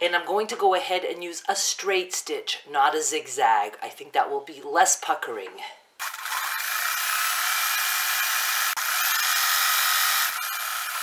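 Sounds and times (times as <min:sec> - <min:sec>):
electric sewing machine running: 0:06.0 - 0:11.0.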